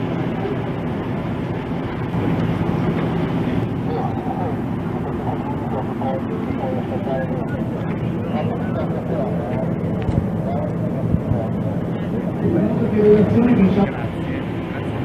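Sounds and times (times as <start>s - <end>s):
engine rumble: 0.0s - 15.0s.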